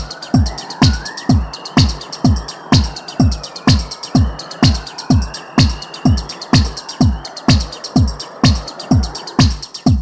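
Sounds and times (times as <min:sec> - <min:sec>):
high chirping sounds: 0:00.0 - 0:09.9
hi-hat ticks: 0:00.0 - 0:10.0
techno kick drum: 0:00.0 - 0:10.0.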